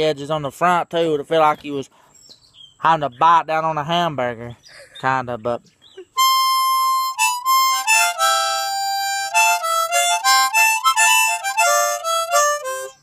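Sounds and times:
blues harmonica playing: 0.4s - 1.2s, 6.1s - 13.0s.

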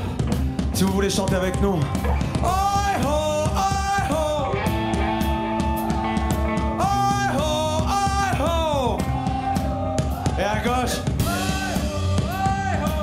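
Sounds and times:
rock band with electric guitars: 0.0s - 13.0s
sing-along chant: 2.4s - 13.0s.

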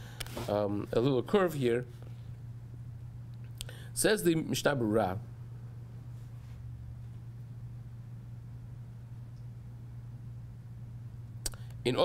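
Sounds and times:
faint breath: 0.0s - 0.4s, 3.6s - 4.0s
steady low hum: 0.0s - 12.0s.

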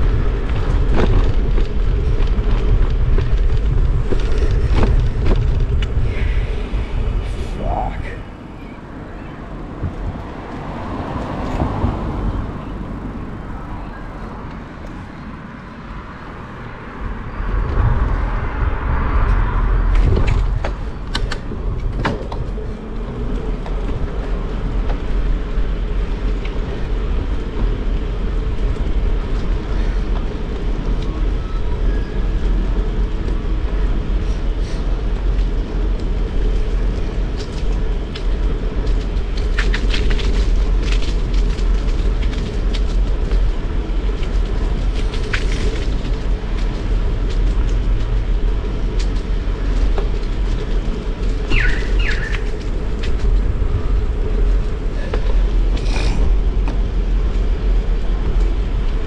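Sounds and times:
bicycle tyre rumble: 0.0s - 59.0s
wind buffeting microphone: 0.0s - 59.0s
sharp clicks and rattles: 19.2s - 25.4s, 35.3s - 59.0s.

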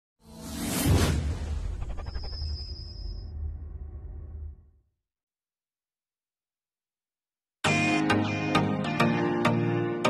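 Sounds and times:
logo intro whoosh: 0.2s - 4.7s.

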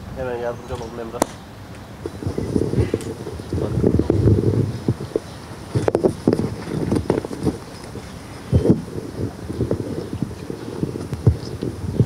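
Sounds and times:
irregular low thumps and knocks: 2.0s - 12.0s.

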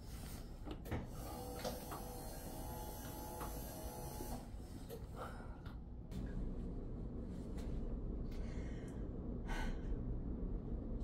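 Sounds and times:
electric bed motor running: 1.1s - 4.5s.

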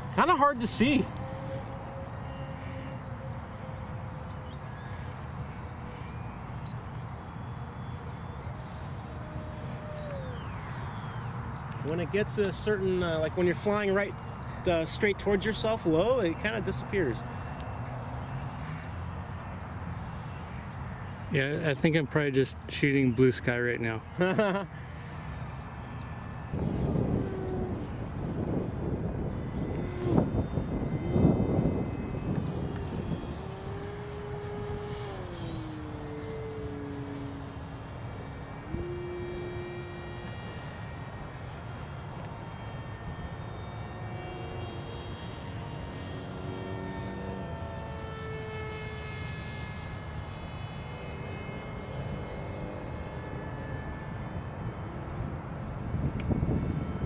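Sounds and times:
propeller aircraft motor droning: 0.0s - 57.0s
wind gusts on microphone: 25.4s - 39.8s, 55.4s - 57.0s.

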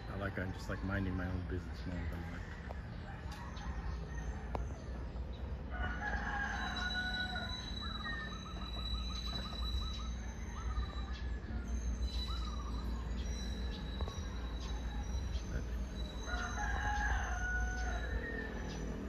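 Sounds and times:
birds calling: 0.0s - 19.0s.

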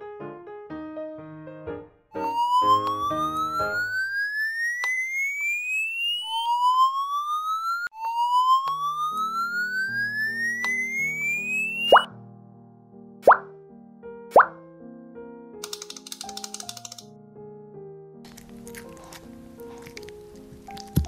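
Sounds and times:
rising bloop pops: 2.2s - 12.1s, 13.2s - 13.5s, 14.3s - 14.6s
rising whistle-like tone: 2.2s - 12.1s
light background music: 15.6s - 21.0s.

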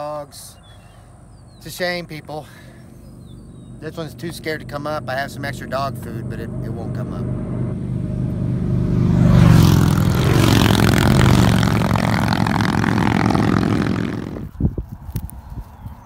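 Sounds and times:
motorcycles passing by: 2.2s - 14.5s.

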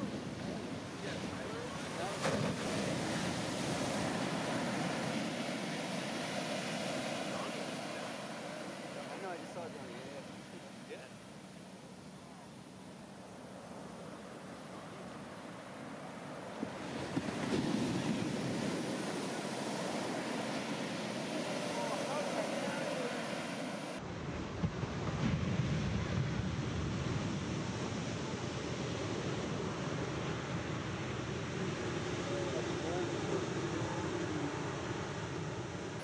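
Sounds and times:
waves breaking on sand: 0.0s - 36.0s
sharp wave crashes: 17.1s - 24.0s.

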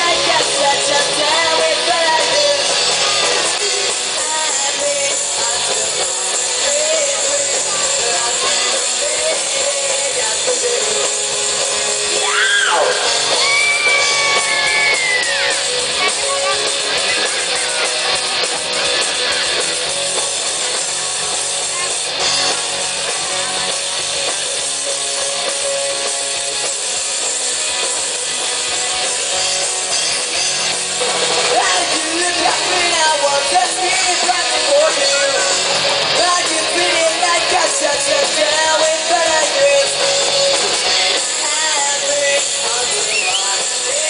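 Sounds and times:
person singing: 0.0s - 18.2s, 31.5s - 44.0s
drum kit: 0.0s - 44.0s
electric guitar: 0.0s - 44.0s.

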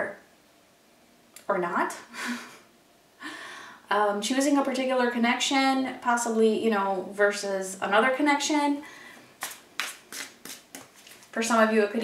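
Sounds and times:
cards being shuffled: 9.4s - 11.4s.

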